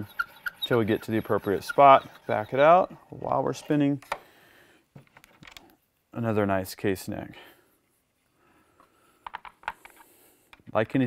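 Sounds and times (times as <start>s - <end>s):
faint metal scraping: 0.0s - 4.0s.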